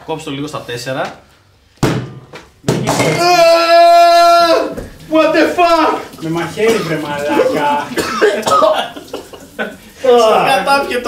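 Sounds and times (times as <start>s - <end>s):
man's long held cry: 3.0s - 6.0s.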